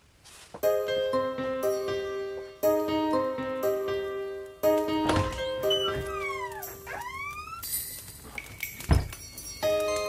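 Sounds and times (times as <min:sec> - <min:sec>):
electronic instrumental music: 0:00.6 - 0:07.0.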